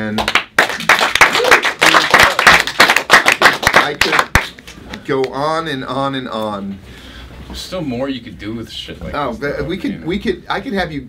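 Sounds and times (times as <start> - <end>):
small group applauding: 0.0 - 5.3.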